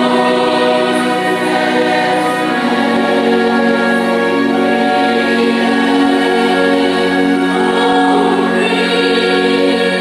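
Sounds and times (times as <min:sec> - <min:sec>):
gospel choir singing: 0:00.0 - 0:10.0.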